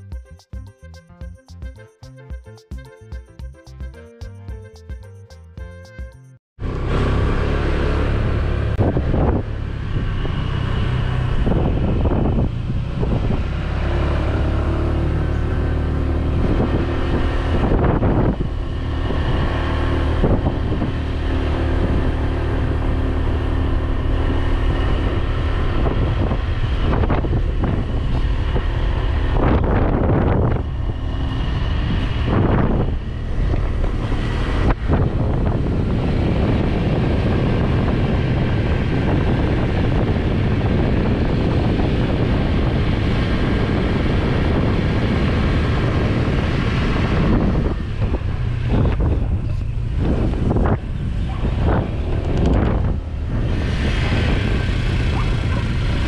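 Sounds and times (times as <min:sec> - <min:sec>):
motor scooter engine running: 0:06.6 - 0:56.0
wind buffeting microphone: 0:08.1 - 0:56.0.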